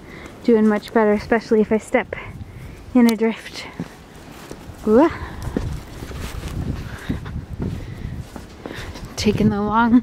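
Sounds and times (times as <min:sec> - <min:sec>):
boots wading through snow: 0:03.5 - 0:09.2.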